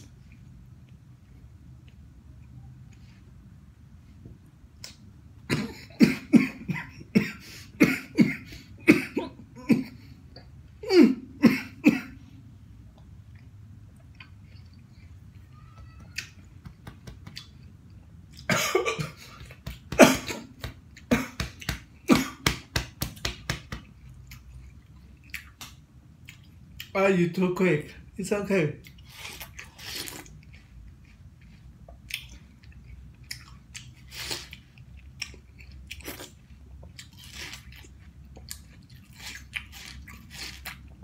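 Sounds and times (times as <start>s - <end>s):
man coughing: 5.5s - 10.1s, 10.8s - 12.2s, 18.5s - 21.4s, 22.0s - 22.4s.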